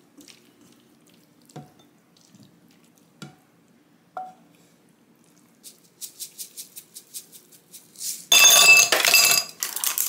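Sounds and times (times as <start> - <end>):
seeds rattling in plastic shaker: 5.5 - 8.4, 9.5 - 10.0.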